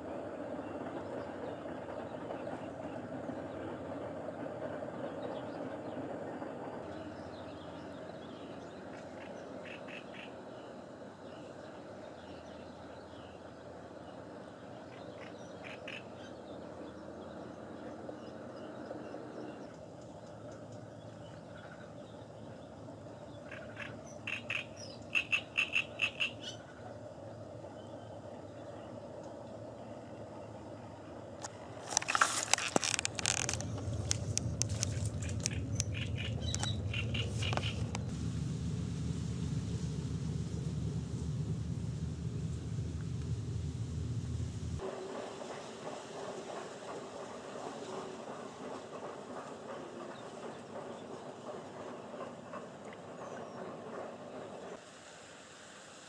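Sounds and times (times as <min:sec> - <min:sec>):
low steady rumble: 0:26.6 - 0:44.8
dry reeds crackling: 0:31.4 - 0:38.4.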